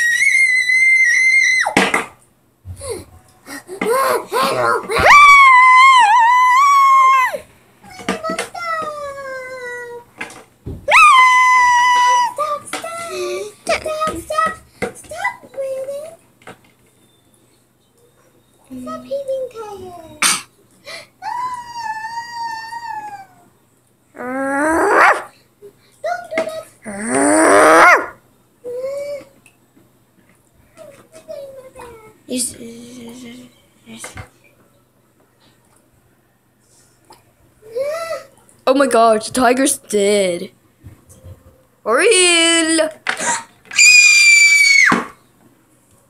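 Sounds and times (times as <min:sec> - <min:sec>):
child squealing and wailing: 0:00.0 - 0:01.8, 0:04.0 - 0:07.5, 0:10.9 - 0:12.5, 0:21.2 - 0:23.5, 0:43.2 - 0:45.1.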